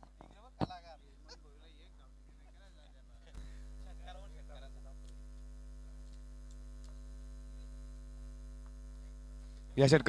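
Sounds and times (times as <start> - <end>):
electrical mains hum: 0.0 - 10.0
faint ticks: 5.0 - 7.7.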